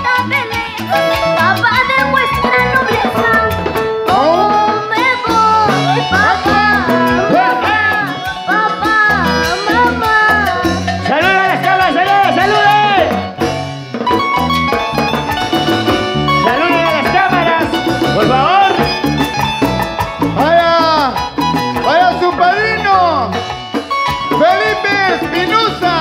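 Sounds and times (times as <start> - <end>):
bass line: 0.0 - 26.0
lead melody with bending notes: 0.0 - 26.0.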